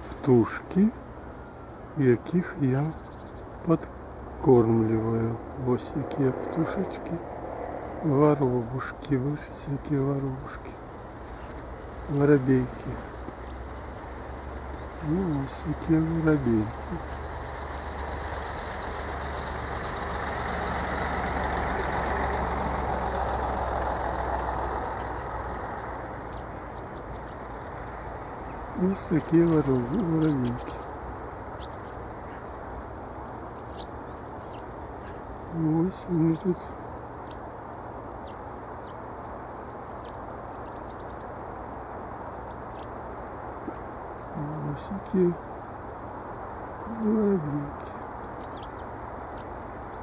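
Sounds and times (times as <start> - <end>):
low background hiss: 0.0 - 50.0
sparrows chirping: 0.0 - 50.0
vehicle passing: 0.0 - 50.0.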